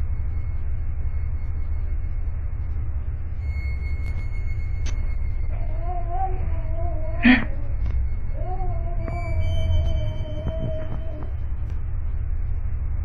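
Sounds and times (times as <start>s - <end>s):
steady low hum: 0.0s - 13.0s
child crying: 5.5s - 11.4s.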